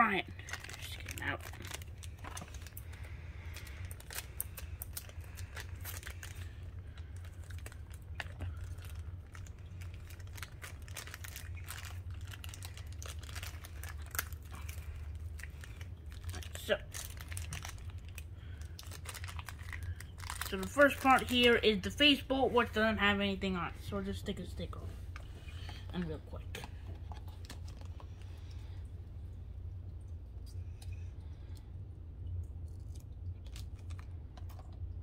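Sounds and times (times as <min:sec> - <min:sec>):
plastic bags crinkling: 0:00.0 - 0:21.8.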